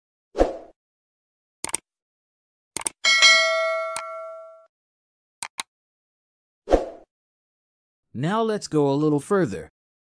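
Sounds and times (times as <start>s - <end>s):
bell ding: 3.0s - 4.7s
mouse clicks: 5.4s - 5.7s.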